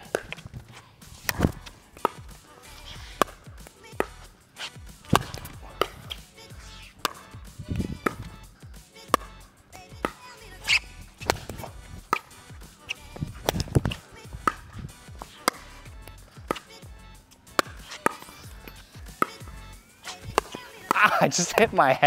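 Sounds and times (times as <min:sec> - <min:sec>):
paddles striking plastic ball: 0:00.0 - 0:02.4, 0:03.1 - 0:04.3, 0:05.0 - 0:06.3, 0:06.9 - 0:08.4, 0:09.0 - 0:09.4, 0:10.0 - 0:16.9, 0:17.5 - 0:19.5, 0:20.1 - 0:22.0
ball bouncing on court: 0:00.0 - 0:08.4, 0:09.0 - 0:22.0.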